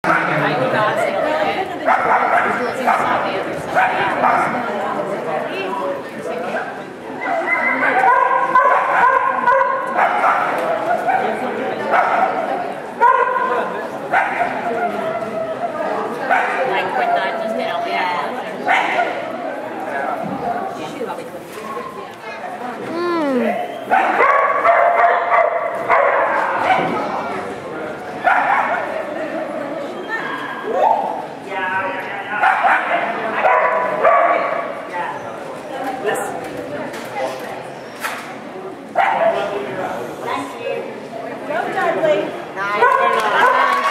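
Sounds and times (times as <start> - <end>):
person calling: 22.9 - 23.7
dogs barking and yipping: 23.9 - 26.8, 28.2 - 28.9.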